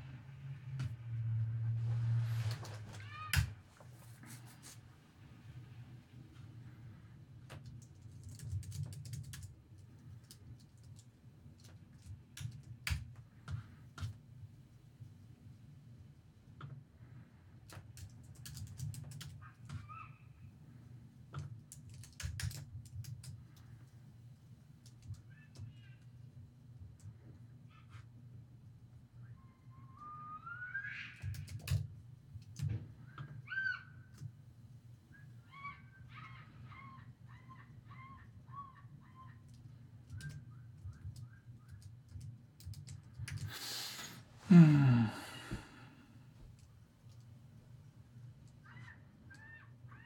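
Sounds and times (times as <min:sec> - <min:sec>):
computer keyboard typing: 0:07.6 - 0:14.2, 0:17.7 - 0:19.4, 0:21.4 - 0:23.4, 0:31.2 - 0:31.8, 0:39.5 - 0:43.5.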